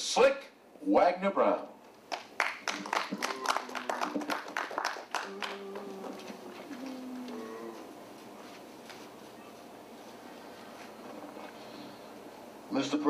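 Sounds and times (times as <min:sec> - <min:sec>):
small audience clapping: 0:02.1 - 0:07.4.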